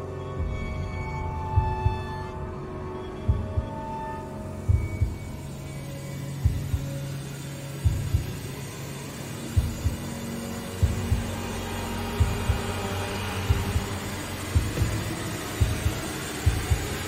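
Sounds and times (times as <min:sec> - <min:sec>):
dark drone: 0:00.0 - 0:17.0
heartbeat-like double thump: 0:04.6 - 0:05.4, 0:14.6 - 0:17.0.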